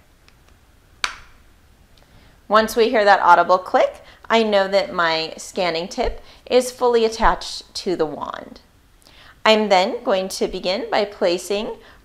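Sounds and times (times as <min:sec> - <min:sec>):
plastic tip clicking into place: 0:00.3 - 0:01.3.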